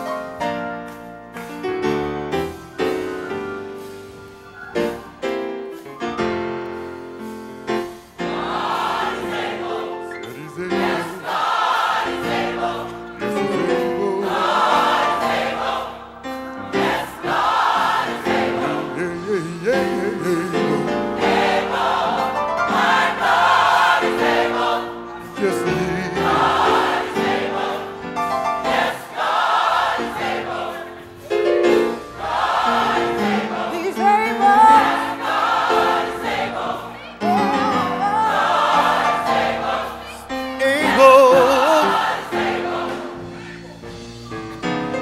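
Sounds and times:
gospel choir singing: 0:00.0 - 0:44.0.

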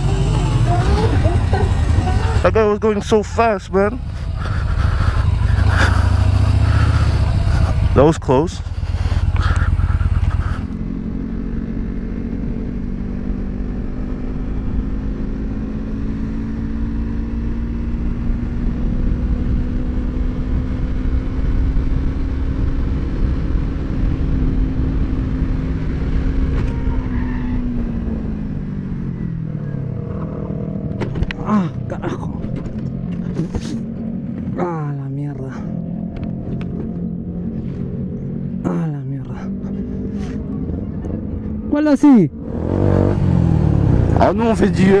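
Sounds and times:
motorcycle engine cruising: 0:00.0 - 0:45.0.

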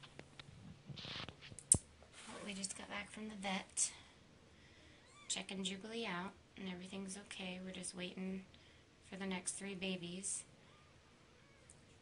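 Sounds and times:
woman speaking: 0:02.3 - 0:04.1, 0:05.3 - 0:08.5, 0:09.1 - 0:10.5.

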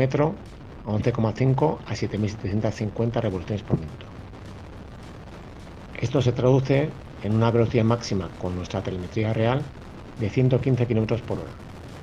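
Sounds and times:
wind rushing: 0:00.0 - 0:12.0.

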